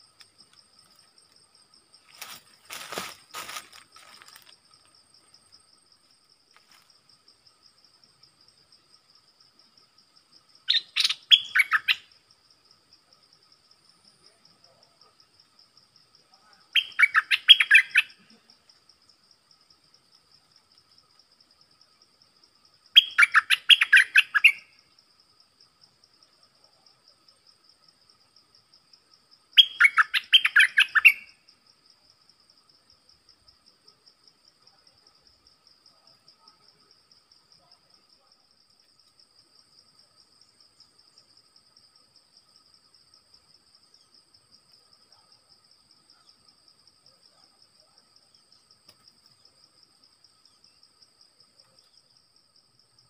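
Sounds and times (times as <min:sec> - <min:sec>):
faint high insect buzz: 0:00.0 - 0:53.0
bulbul singing: 0:10.7 - 0:12.1.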